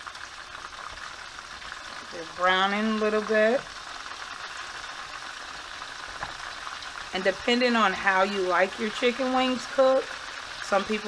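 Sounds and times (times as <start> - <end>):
chicken sizzling in hot oil: 0.0 - 11.0.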